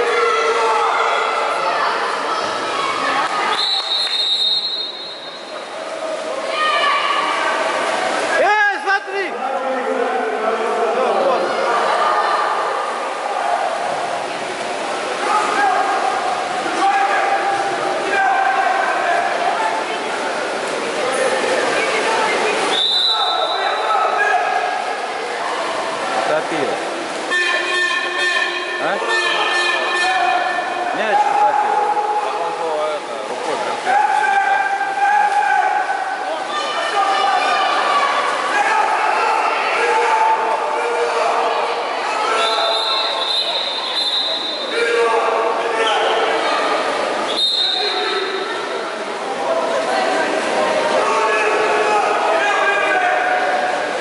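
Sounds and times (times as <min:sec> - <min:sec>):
players shouting in pool hall: 0:00.0 - 0:09.4, 0:15.0 - 0:19.8, 0:22.6 - 0:26.0, 0:27.1 - 0:32.6, 0:33.8 - 0:54.0.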